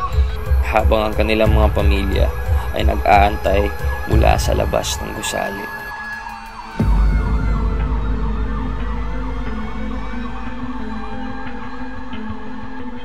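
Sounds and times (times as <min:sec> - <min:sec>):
low rumble: 0:00.0 - 0:05.3, 0:06.8 - 0:12.7.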